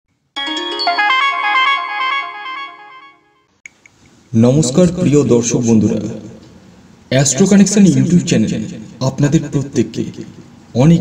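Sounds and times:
electronic music jingle: 0:00.4 - 0:03.5.

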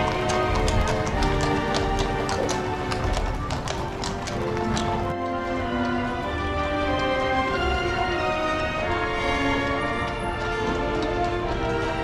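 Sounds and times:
background music with held notes: 0:00.0 - 0:12.0
horse hooves on brick: 0:00.0 - 0:12.0.

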